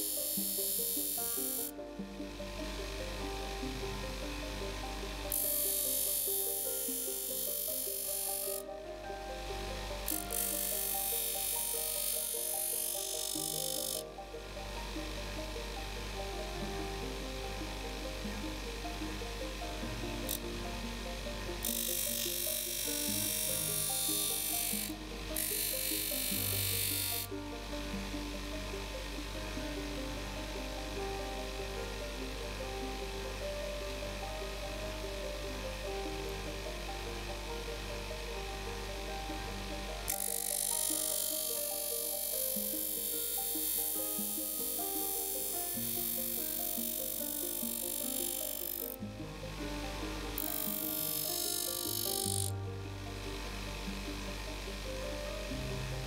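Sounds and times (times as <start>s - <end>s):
background music: 0.0s - 56.0s
small motorised machine buzzing: 0.0s - 56.0s.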